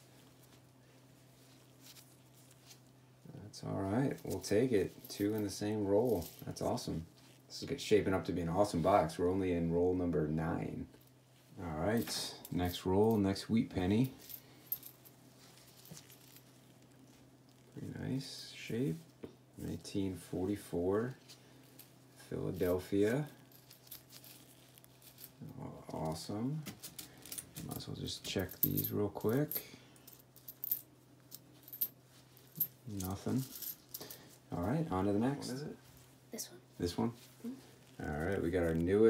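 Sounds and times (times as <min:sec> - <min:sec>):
faint low hum: 0:00.0 - 0:39.0
coins clinking together: 0:28.4 - 0:34.2.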